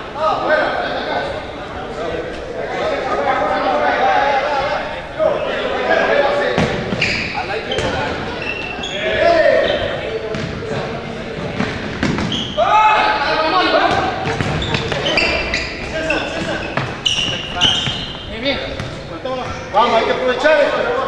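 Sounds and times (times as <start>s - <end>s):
players shouting: 0.0s - 21.0s.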